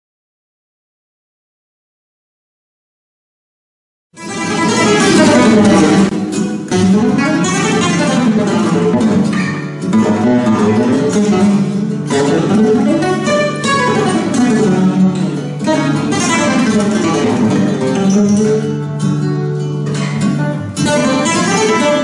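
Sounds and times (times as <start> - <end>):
flamenco guitar playing: 4.2 - 22.0.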